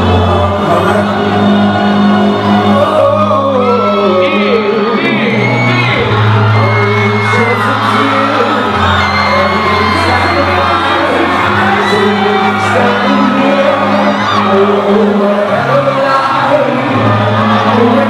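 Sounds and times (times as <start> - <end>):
crowd whooping and shouting: 0.0 - 18.0.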